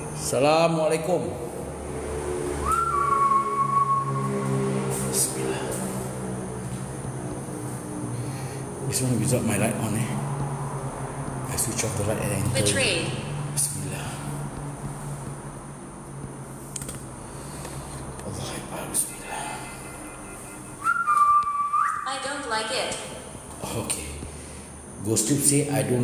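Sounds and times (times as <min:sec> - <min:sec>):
loud whistle-like high tone: 0:02.5 - 0:05.6, 0:18.8 - 0:22.3
low steady hum: 0:03.6 - 0:26.0.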